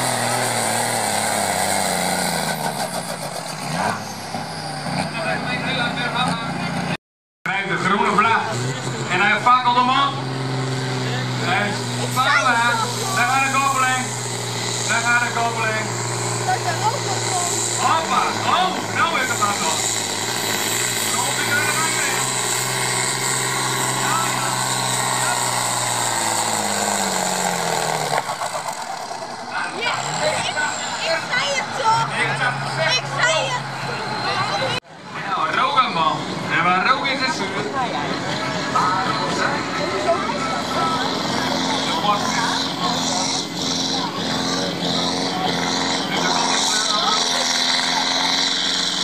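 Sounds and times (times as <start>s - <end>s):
tractor diesel engine under load: 0.0s - 49.0s.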